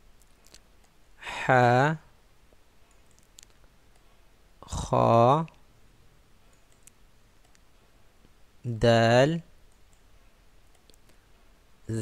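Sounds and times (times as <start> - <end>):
man saying a syllable: 1.2 - 2.1, 4.6 - 5.6, 8.7 - 9.5
faint computer mouse clicks: 6.5 - 7.7, 9.7 - 11.2.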